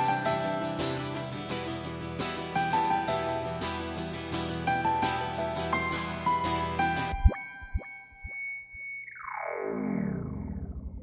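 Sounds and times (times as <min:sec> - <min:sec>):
electronic tone with blips: 0:07.0 - 0:11.0.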